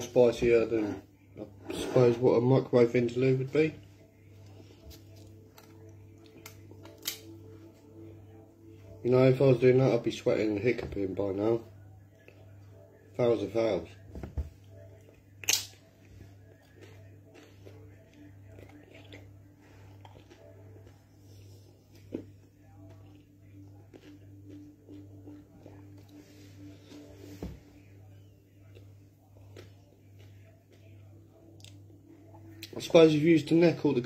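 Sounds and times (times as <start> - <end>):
steady low hum: 0.0 - 34.0
man chewing food: 4.0 - 7.9, 14.6 - 27.2, 27.8 - 32.8.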